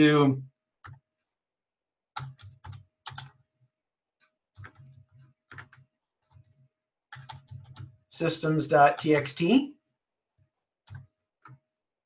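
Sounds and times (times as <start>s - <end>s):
typing on computer keyboard: 0.8s - 1.1s, 2.1s - 3.4s, 4.5s - 6.5s, 7.1s - 8.0s, 10.8s - 11.6s.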